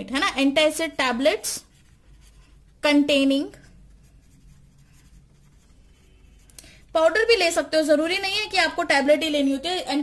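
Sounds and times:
pen scratching on paper: 0:00.8 - 0:06.5.

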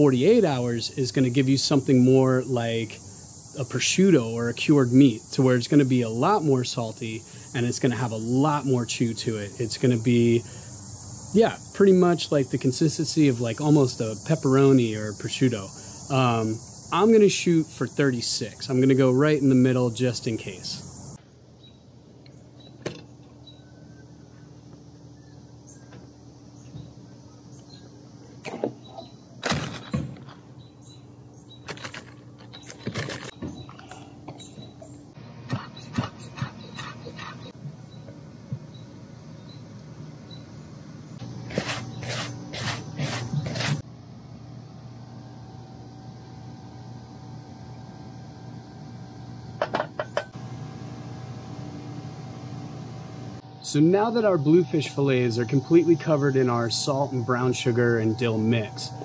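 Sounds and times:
low steady hum: 0:00.0 - 0:59.0
knife and bowl on cutting board: 0:41.5 - 0:43.8.

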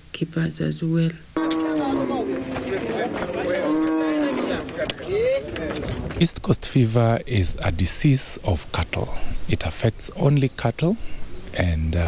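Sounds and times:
cattle mooing: 0:01.4 - 0:04.9.

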